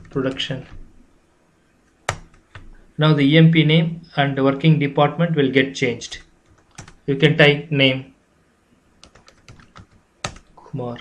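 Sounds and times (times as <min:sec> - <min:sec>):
keyboard typing: 0:00.0 - 0:00.9, 0:02.0 - 0:02.8, 0:06.1 - 0:07.1, 0:09.0 - 0:10.6.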